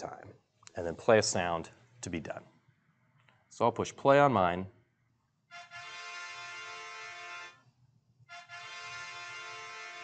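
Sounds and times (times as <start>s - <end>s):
long electronic tones: 5.5s - 7.6s.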